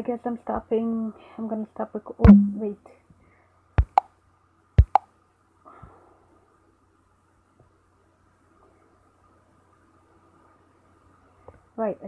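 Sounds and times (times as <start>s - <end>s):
fingertip taps on touchscreen: 2.3s - 2.6s, 3.8s - 4.1s, 4.8s - 5.0s.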